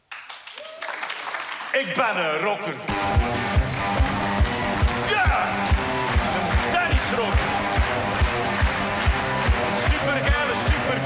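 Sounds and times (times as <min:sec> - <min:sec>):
guitar chords: 0:02.9 - 0:11.0
rock music: 0:02.9 - 0:11.0.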